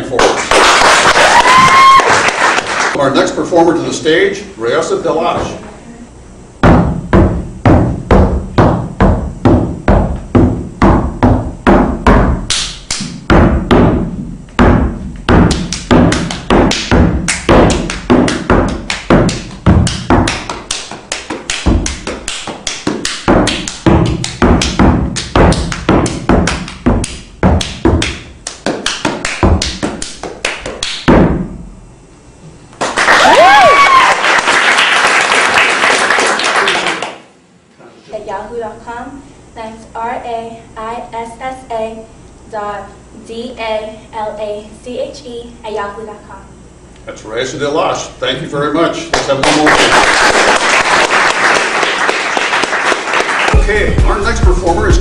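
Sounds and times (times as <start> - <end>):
applause: 0.0 - 3.0, 32.8 - 37.3, 49.1 - 53.7
music beat: 6.6 - 31.6, 53.5 - 55.0
dance footwork taps and thuds: 6.6 - 31.7.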